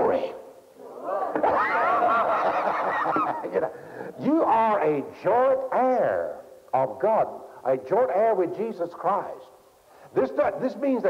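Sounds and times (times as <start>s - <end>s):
congregation calling out: 0.0s - 2.4s.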